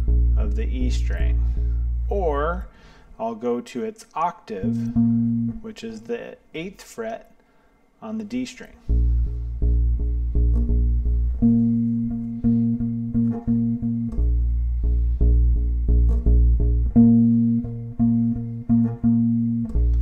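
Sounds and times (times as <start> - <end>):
electric bass plucked notes: 0.0 - 2.7, 4.5 - 5.7, 8.8 - 20.0.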